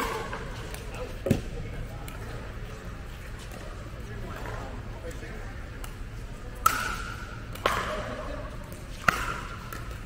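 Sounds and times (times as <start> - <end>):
pickleball being struck: 6.6 - 8.1, 8.7 - 10.0.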